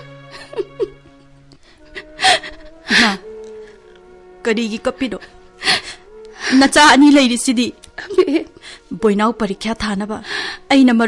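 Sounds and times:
person gasping and sobbing: 0.0s - 4.0s, 5.4s - 6.7s, 8.5s - 8.9s
quiet held music underscore: 0.0s - 11.0s.

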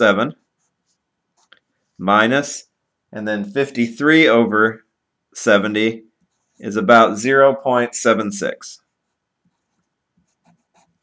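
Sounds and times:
marker writing on paper: 0.3s - 1.6s, 6.2s - 6.7s, 8.9s - 11.0s.

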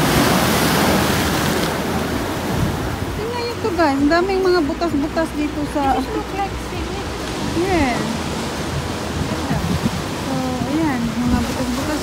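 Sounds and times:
ocean surf breaking on rock: 0.0s - 12.0s.

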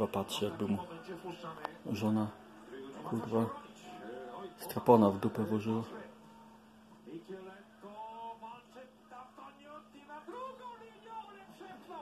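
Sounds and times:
sports commentator on television: 0.0s - 12.0s.

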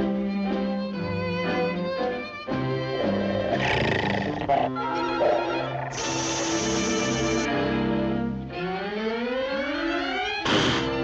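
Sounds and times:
cartoon dog growling: 3.0s - 7.5s.

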